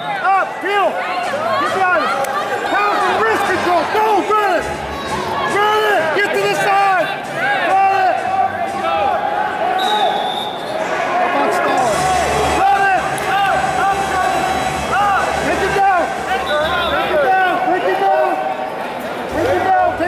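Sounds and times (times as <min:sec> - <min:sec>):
voices shouting in echoing hall: 0:00.0 - 0:20.0.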